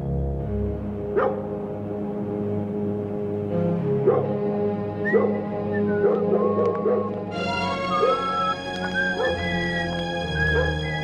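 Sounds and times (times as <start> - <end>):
ominous background music: 0.0 - 11.0.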